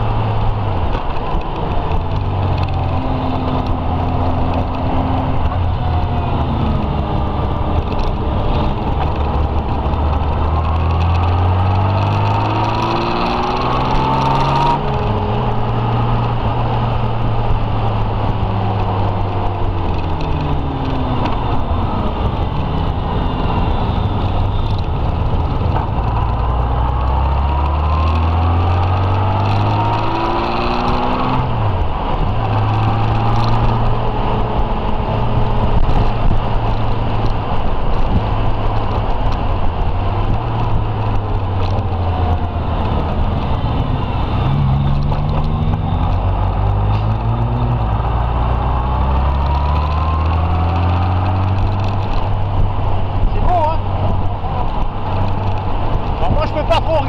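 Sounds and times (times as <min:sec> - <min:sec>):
wind and road noise: 0:00.0 - 0:57.0.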